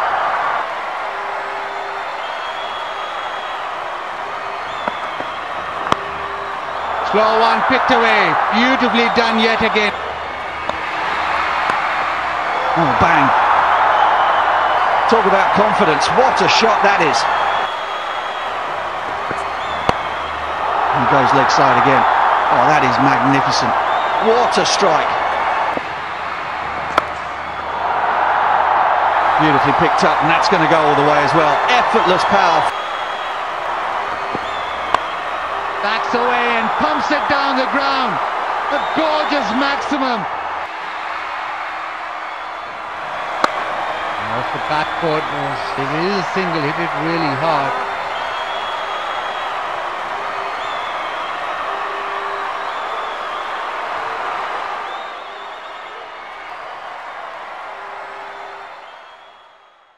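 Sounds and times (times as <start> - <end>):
crowd applause and murmur: 0.0 - 59.9
cricket bat striking ball: 4.7 - 6.2, 10.6 - 12.0, 18.9 - 20.2, 26.8 - 27.3, 34.1 - 35.2, 43.3 - 43.9.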